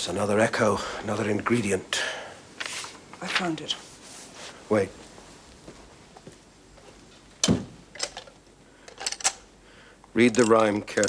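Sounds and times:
small clicks and knocks: 0:10.0 - 0:11.0.

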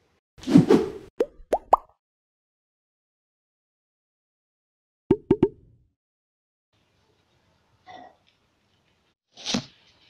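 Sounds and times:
cartoon bloop pops: 0:01.2 - 0:01.9.

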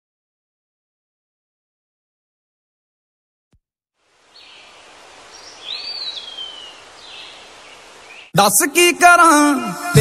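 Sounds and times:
outdoor background hiss: 0:04.0 - 0:10.0
bird chirping: 0:04.3 - 0:08.4.

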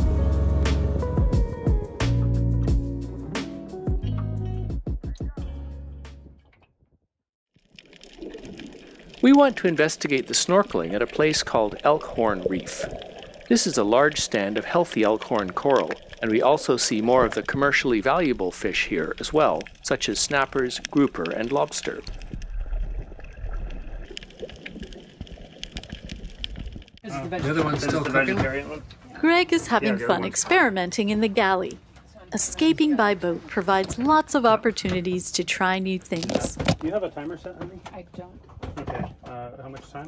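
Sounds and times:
sharp underwater clicks and crackles: 0:07.5 - 0:27.0, 0:36.0 - 0:39.3
underwater moving water: 0:07.5 - 0:27.2.

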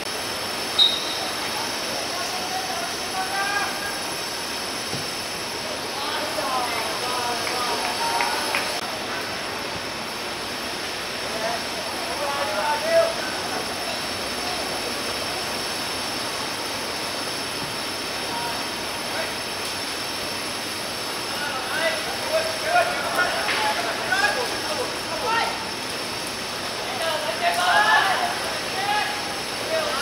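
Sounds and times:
steady outdoor hiss: 0:00.0 - 0:30.0
players shouting: 0:00.8 - 0:04.3, 0:05.8 - 0:08.8, 0:21.5 - 0:25.7, 0:27.0 - 0:30.0.

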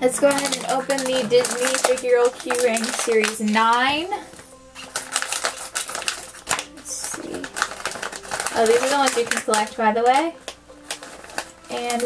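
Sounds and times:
foil bag crinkling: 0:00.0 - 0:12.0.

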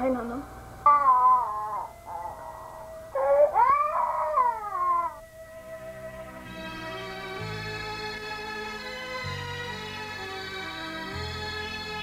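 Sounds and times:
crying wails: 0:00.9 - 0:05.3.

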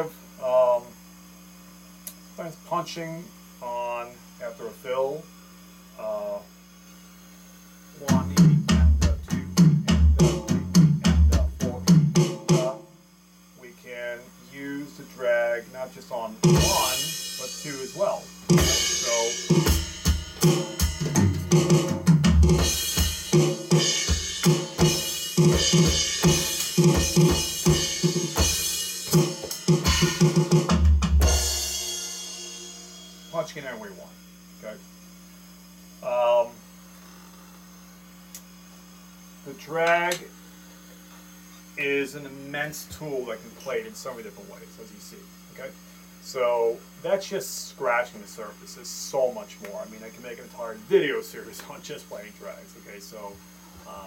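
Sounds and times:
steady electrical hum: 0:00.0 - 0:54.0
electronic drum kit playing: 0:08.0 - 0:12.9, 0:16.3 - 0:34.2
cymbal crashes: 0:16.4 - 0:34.2.

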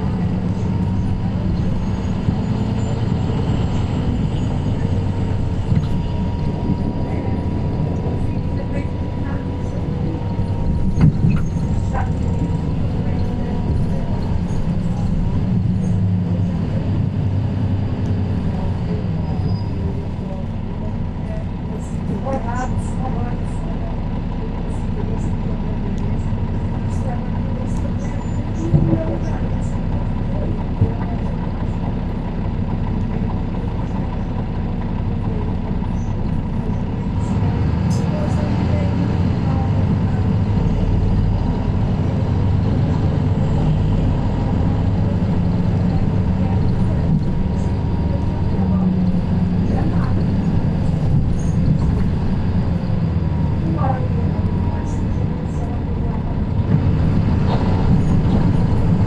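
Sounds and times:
bus engine rumble: 0:00.0 - 0:59.0.

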